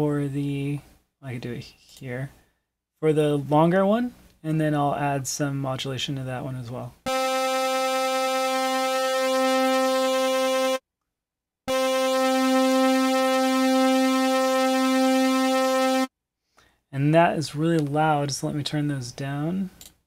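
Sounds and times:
bright buzzy synthesizer note: 0:07.1 - 0:10.8, 0:11.7 - 0:16.1.

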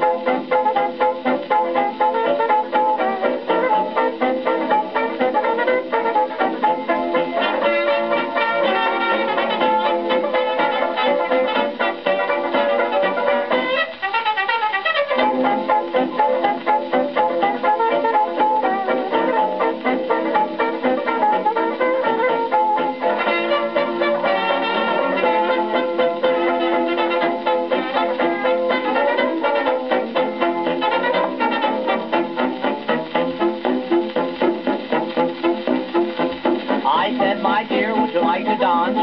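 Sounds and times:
dance band on gramophone record: 0:00.0 - 0:39.0.

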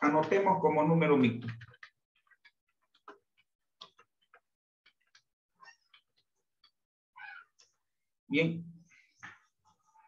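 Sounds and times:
faint pitched call: 0:07.2 - 0:07.6.

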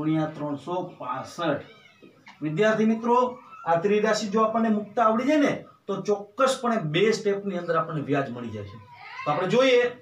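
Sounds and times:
man speaking: 0:00.0 - 0:01.7, 0:02.3 - 0:10.0.

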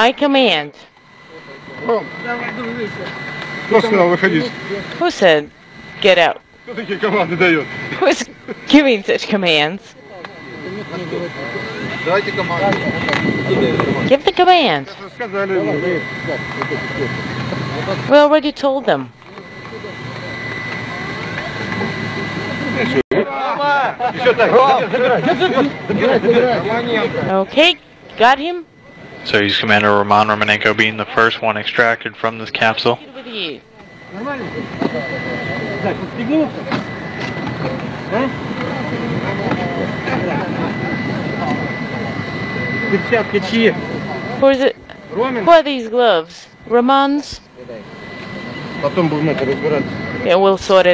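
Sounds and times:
people talking at once: 0:00.0 - 0:50.9
steady low hum: 0:00.0 - 0:50.9.

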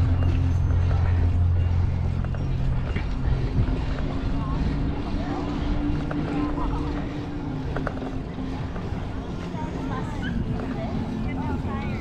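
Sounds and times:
faint chatter of people: 0:00.0 - 0:12.0
wind and ride rumble: 0:00.0 - 0:12.0.

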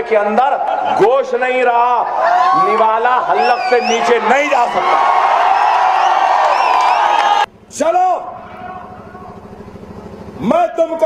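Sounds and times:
man speaking: 0:02.6 - 0:04.9
low buzzing hum: 0:03.2 - 0:11.0.

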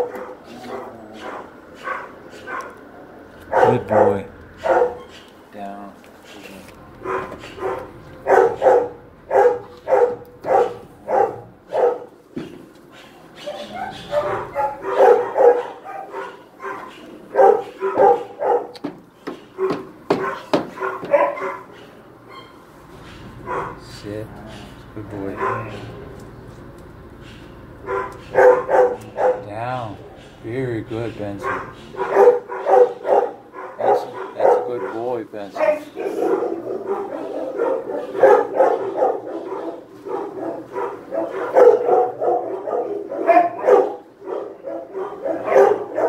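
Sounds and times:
dog barking: 0:00.0 - 0:02.8, 0:03.4 - 0:05.2, 0:07.0 - 0:12.2, 0:13.0 - 0:22.4, 0:23.4 - 0:23.9, 0:25.2 - 0:26.0, 0:27.8 - 0:30.3, 0:31.4 - 0:46.0.

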